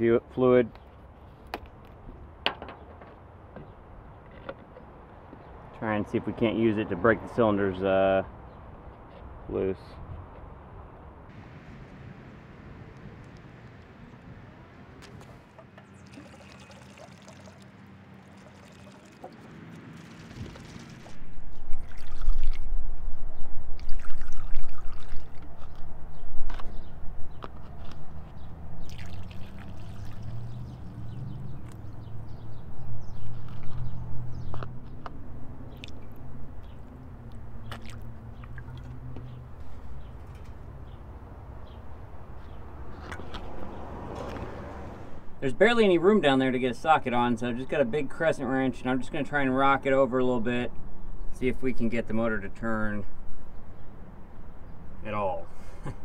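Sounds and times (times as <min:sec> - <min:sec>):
liquid gurgling through a funnel: 0:15.9 - 0:17.7, 0:18.3 - 0:21.1, 0:21.7 - 0:22.7, 0:23.8 - 0:25.4, 0:28.9 - 0:30.6.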